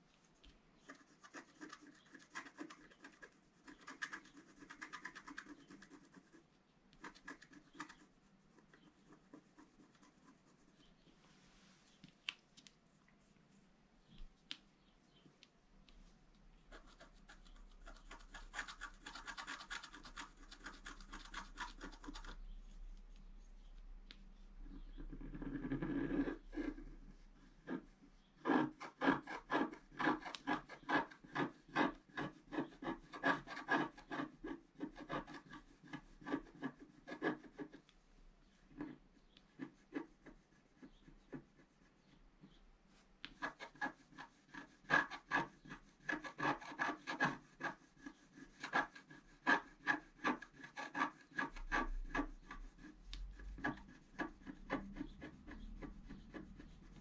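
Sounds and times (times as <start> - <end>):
stick scratching paper: 0.8 - 11.0, 16.6 - 37.9, 38.7 - 42.6, 43.2 - 57.0.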